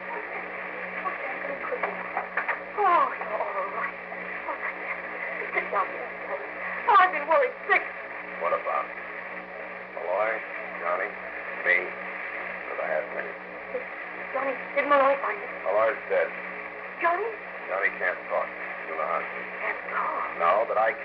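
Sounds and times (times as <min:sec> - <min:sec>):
steady hum and hiss: 0:00.0 - 0:21.0
voices on old radio broadcast: 0:00.0 - 0:21.0.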